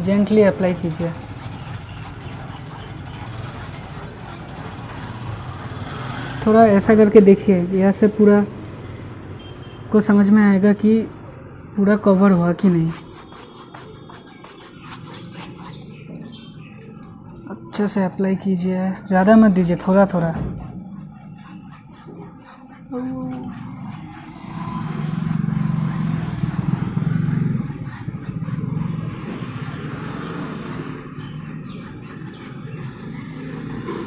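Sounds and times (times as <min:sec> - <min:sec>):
paintbrush rubbing on canvas: 0:00.0 - 0:06.6, 0:10.8 - 0:16.9, 0:17.7 - 0:34.0
engine running with rapid pulse: 0:23.3 - 0:34.0.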